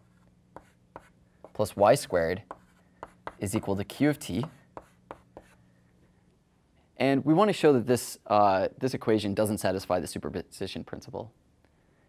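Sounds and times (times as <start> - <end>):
chalk writing on blackboard: 0.0 - 3.8, 4.4 - 5.7
faint low hum: 0.0 - 12.0.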